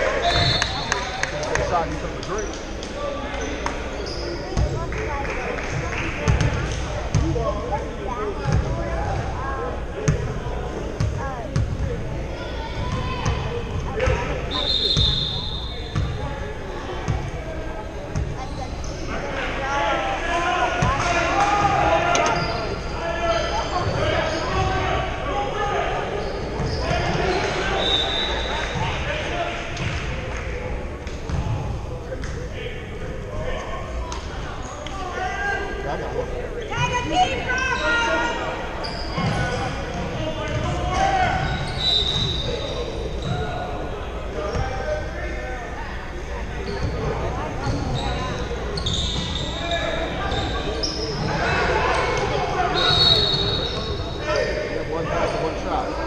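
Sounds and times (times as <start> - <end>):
people talking and calling out: 0.0 - 56.0.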